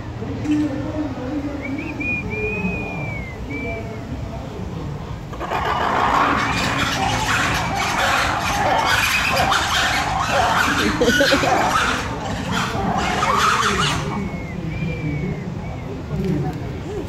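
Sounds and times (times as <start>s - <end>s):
lemurs squealing alarm chorus: 5.3s - 17.0s.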